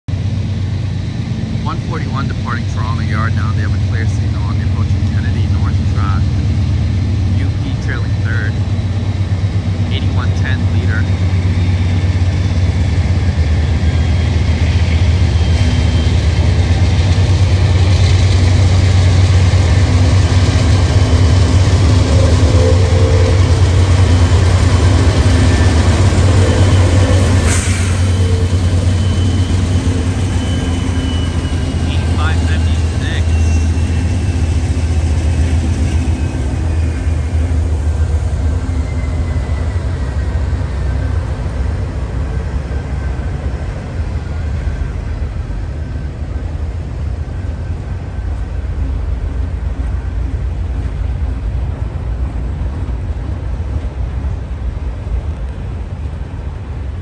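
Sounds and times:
locomotive engine drone: 0.1 - 57.0.

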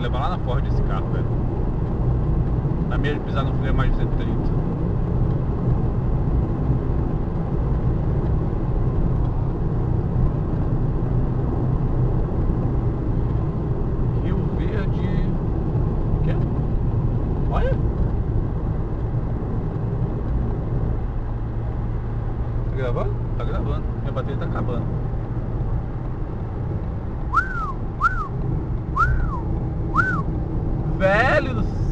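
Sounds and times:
car road and engine noise: 0.0 - 31.9.

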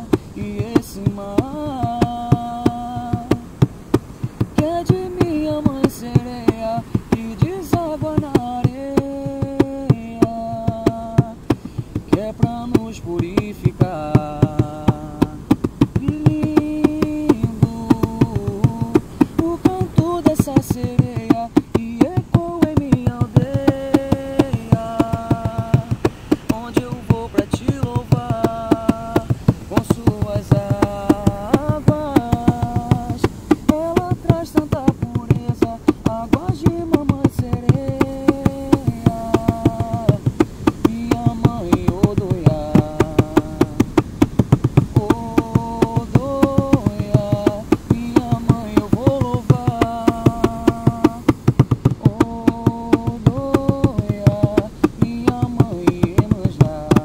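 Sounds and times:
person singing long notes: 0.0 - 3.6, 4.5 - 51.4, 52.0 - 57.0
hand drum rhythm: 0.0 - 57.0.

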